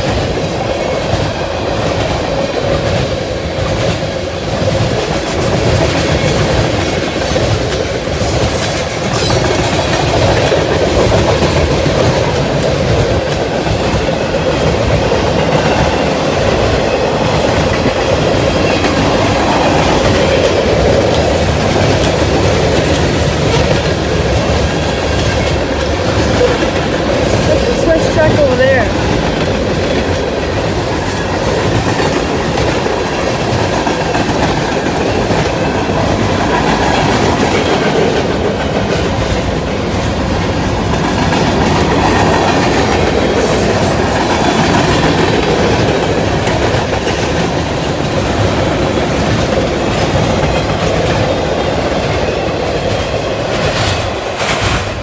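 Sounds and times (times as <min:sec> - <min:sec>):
train rumble: 0:00.0 - 0:55.0
train wheels clacking over rail joints: 0:00.0 - 0:55.0.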